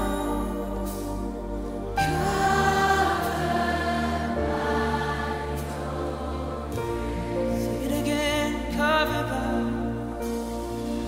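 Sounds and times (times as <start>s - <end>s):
voices singing held notes: 0.0s - 8.7s
worship band sustained chords: 0.0s - 11.0s.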